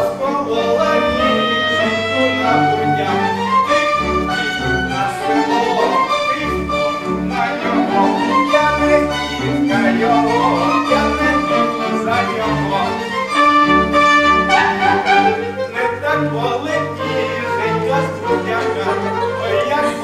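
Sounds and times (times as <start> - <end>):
violins playing: 0.0 - 20.0.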